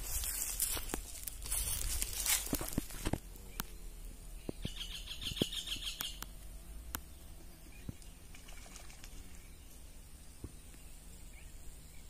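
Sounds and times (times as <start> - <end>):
bird calling in high repeated notes: 4.6 - 6.2.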